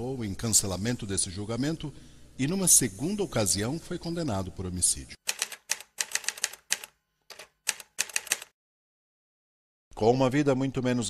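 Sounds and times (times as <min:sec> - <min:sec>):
typewriter key clicks: 0:05.3 - 0:08.5.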